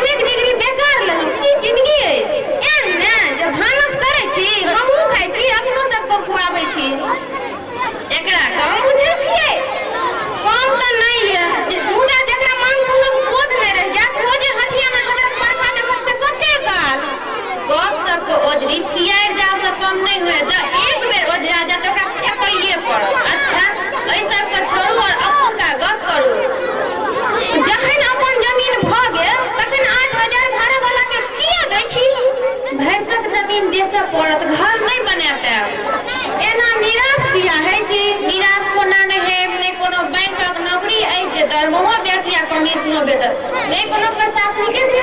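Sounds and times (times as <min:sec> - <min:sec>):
several people talking at once: 0:00.0 - 0:45.0.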